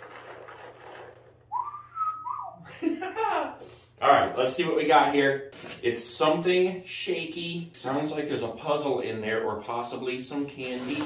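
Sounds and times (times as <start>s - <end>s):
man whistling: 1.5s - 2.7s.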